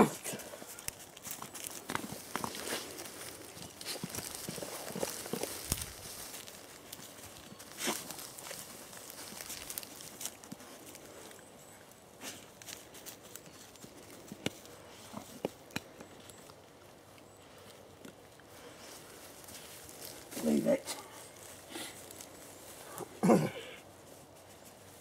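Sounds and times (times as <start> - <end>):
boots shifting on wet grass: 0.0 - 11.1, 18.5 - 25.0
carcass dragged on ground: 0.0 - 11.3.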